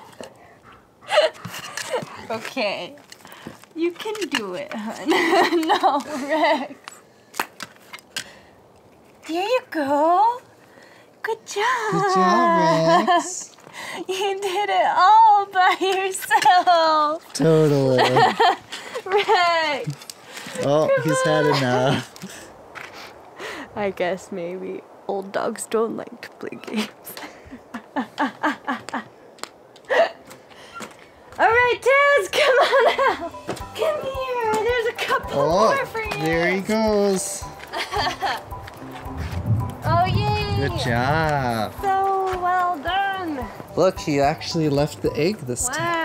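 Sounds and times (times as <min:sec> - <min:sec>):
woman laughing: 0:01.1 - 0:02.4, 0:04.8 - 0:06.8, 0:11.7 - 0:22.4, 0:26.6 - 0:29.1, 0:29.9 - 0:30.3, 0:32.2 - 0:34.1, 0:37.6 - 0:38.5.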